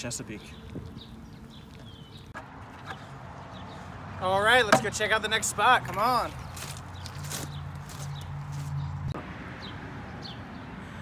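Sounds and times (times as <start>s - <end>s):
footsteps on gravel: 0.2s - 3.7s, 5.9s - 8.9s
high bird chirps: 0.3s - 3.9s.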